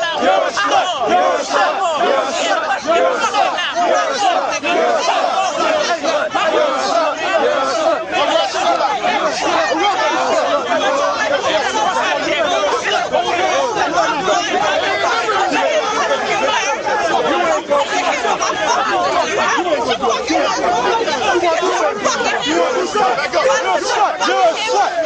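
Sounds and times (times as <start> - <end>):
people chattering: 0.0 - 25.0.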